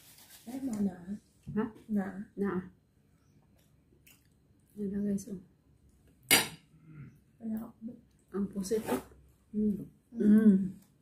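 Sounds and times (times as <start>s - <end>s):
tableware clattering on table: 6.3s - 6.6s.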